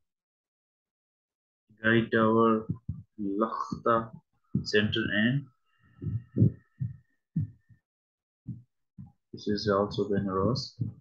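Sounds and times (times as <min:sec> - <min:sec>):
short low thuds: 0:02.5 - 0:07.7, 0:08.5 - 0:11.0.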